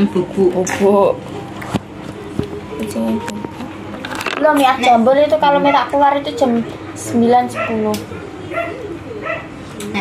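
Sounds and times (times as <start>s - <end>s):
people talking: 0.0s - 1.2s, 2.7s - 8.1s, 9.8s - 10.0s.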